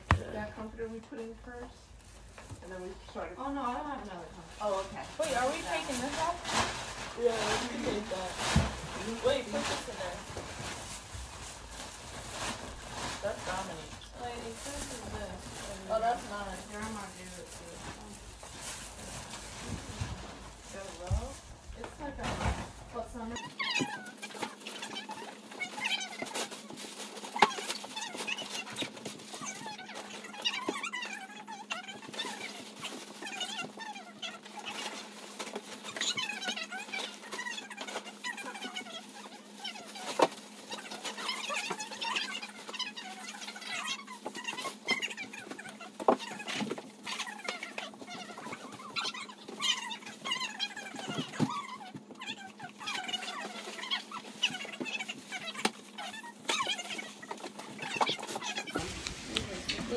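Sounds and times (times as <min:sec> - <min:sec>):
bags rustling and clattering: 0:00.0 - 0:59.9.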